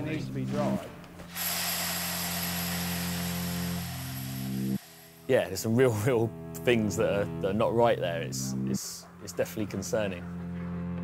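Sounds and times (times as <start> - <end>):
machine noise with high whine: 1.3 - 5.3.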